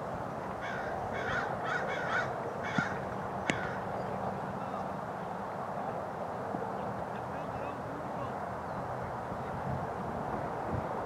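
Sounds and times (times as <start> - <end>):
bird calls: 0.6 - 4.2.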